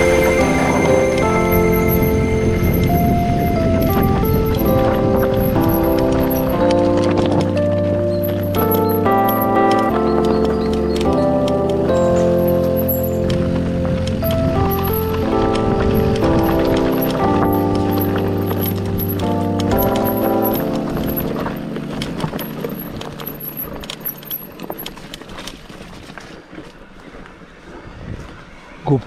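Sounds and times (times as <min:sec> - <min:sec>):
background music: 0:00.0 - 0:24.4
mountain bike rattling and clicking: 0:00.0 - 0:27.8.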